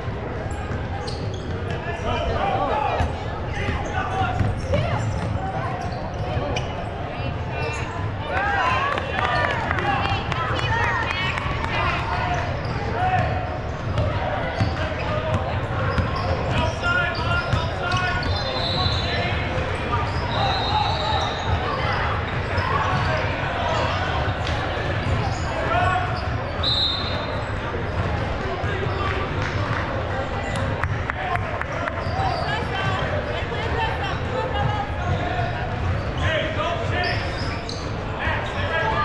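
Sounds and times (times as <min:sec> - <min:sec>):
people shouting and chattering: 0:00.0 - 0:39.0.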